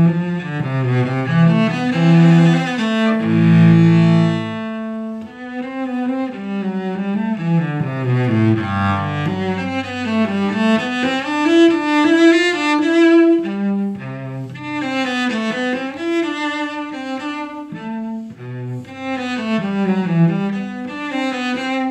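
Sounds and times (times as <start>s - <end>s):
bowed cello: 0.0s - 21.9s.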